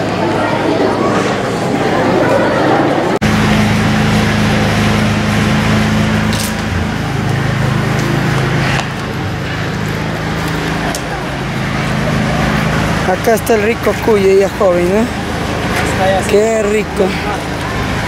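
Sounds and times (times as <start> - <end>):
open-air noise: 0.0 - 18.0
engine idling: 3.2 - 18.0.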